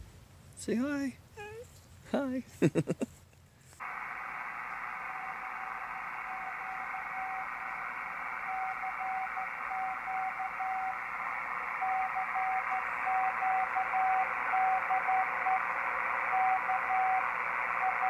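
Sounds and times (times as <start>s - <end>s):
radio band hiss: 3.8s - 18.0s
morse code tone: 6.2s - 18.0s.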